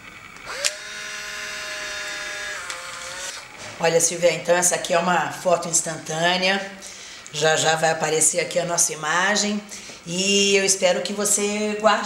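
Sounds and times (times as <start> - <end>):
film ejection motor whirring: 0.2 - 3.8.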